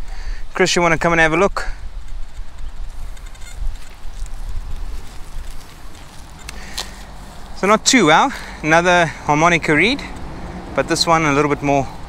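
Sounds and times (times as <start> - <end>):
wind rumbling on microphone: 0.0 - 7.9
distant bird calls: 2.4 - 7.6.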